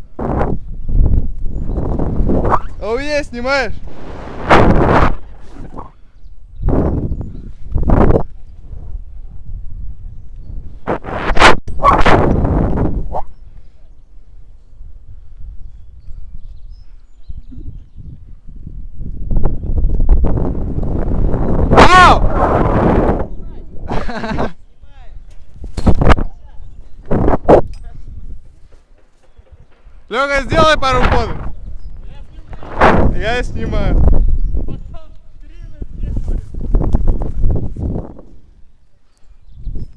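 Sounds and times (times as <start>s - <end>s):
wind rushing over microphone: 0.0s - 39.9s.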